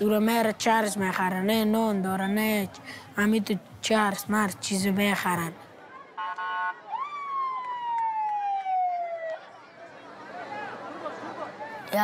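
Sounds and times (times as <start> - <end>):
vehicle siren wailing: 6.2 - 9.5.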